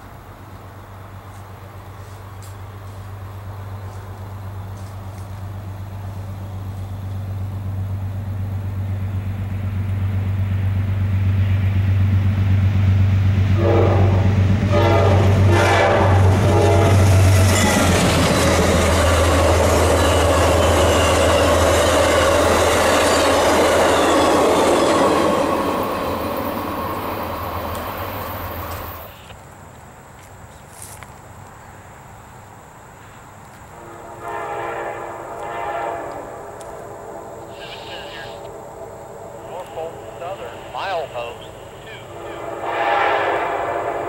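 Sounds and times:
diesel locomotive engine drone: 0:00.0 - 0:29.9, 0:31.4 - 0:44.0
train horn blasts: 0:13.4 - 0:18.0, 0:33.7 - 0:44.0
train wheels clattering over rails: 0:14.2 - 0:29.0.

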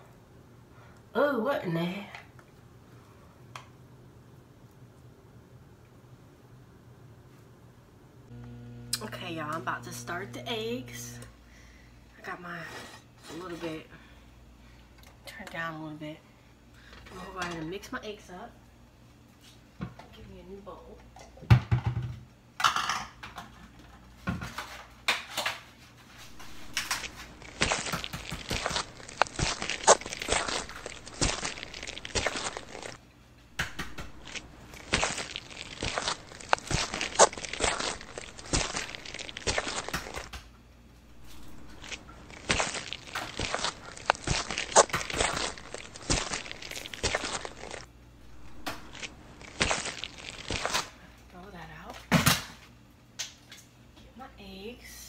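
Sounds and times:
fork beating eggs in bowl: 0:26.2 - 0:33.0, 0:33.6 - 0:40.4, 0:41.3 - 0:47.9.

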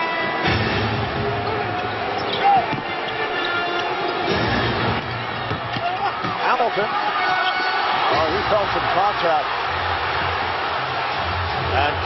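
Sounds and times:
arena crowd noise: 0:00.0 - 0:12.0
sneaker squeak: 0:01.4 - 0:04.4.

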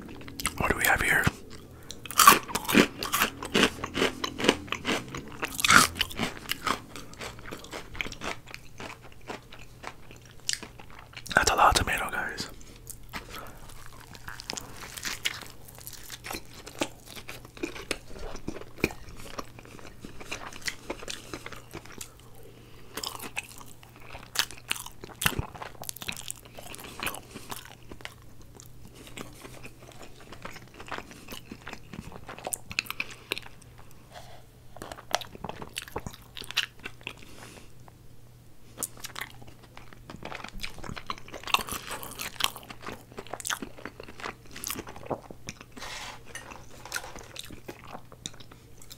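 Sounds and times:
chewing and crunching fried chicken: 0:00.0 - 0:48.9.

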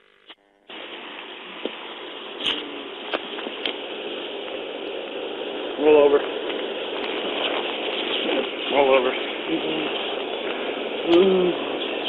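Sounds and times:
steady hiss: 0:00.3 - 0:12.0.

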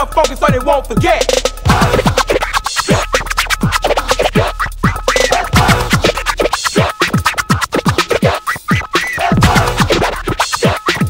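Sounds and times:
drum machine beat: 0:00.0 - 0:11.0
turntable scratching: 0:00.0 - 0:11.0.

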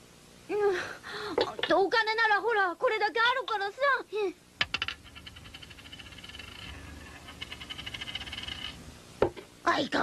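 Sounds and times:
faint low hum: 0:00.0 - 0:10.0
rapid chirring trill: 0:05.0 - 0:08.8.

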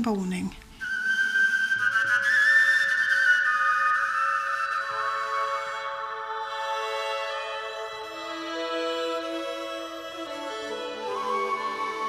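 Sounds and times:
slow folk fiddle music: 0:00.8 - 0:12.0.

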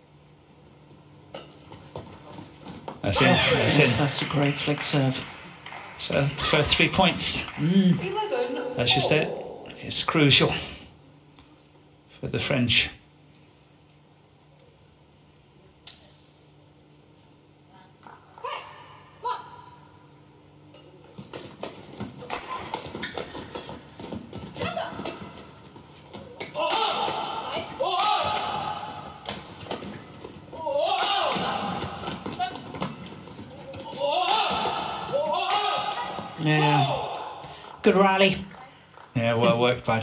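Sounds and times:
shoes thudding and squeaking on court: 0:21.0 - 0:30.7, 0:31.3 - 0:36.5.

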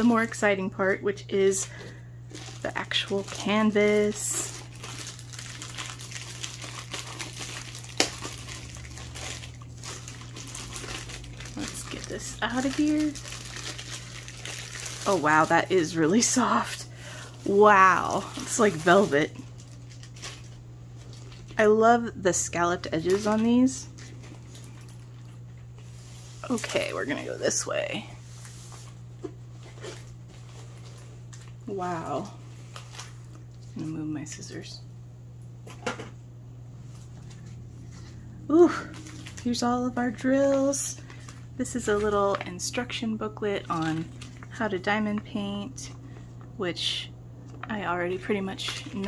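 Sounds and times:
plastic sleeve rustling: 0:00.0 - 0:21.8, 0:22.7 - 0:33.9, 0:36.8 - 0:46.3, 0:47.6 - 0:49.0
steady low hum: 0:00.0 - 0:49.0.

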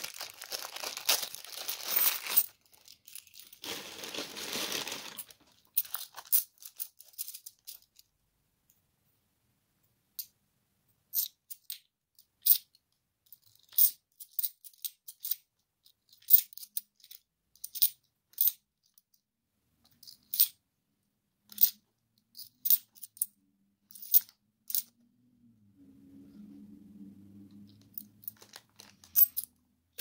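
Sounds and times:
coins clinking together: 0:29.1 - 0:29.5.

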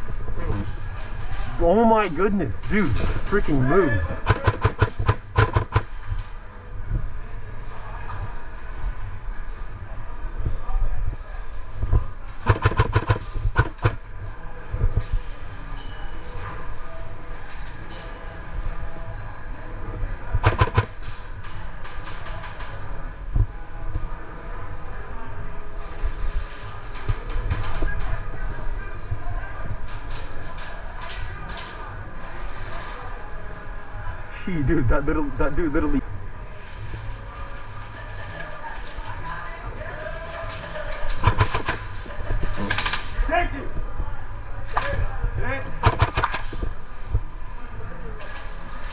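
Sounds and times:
airsoft guns firing rapid clicks: 0:04.2 - 0:05.9, 0:12.4 - 0:14.0, 0:20.4 - 0:20.9, 0:41.1 - 0:42.0, 0:45.8 - 0:46.6.

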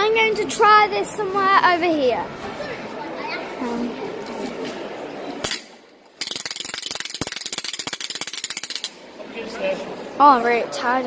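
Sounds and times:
wooden ratchet rattle clacking: 0:06.2 - 0:09.0.

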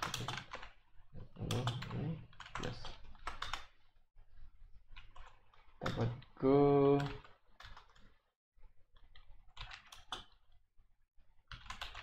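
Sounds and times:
computer keyboard typing: 0:00.0 - 0:00.8, 0:01.4 - 0:03.8, 0:04.9 - 0:06.3, 0:06.9 - 0:08.2, 0:09.0 - 0:10.5, 0:11.5 - 0:12.0.

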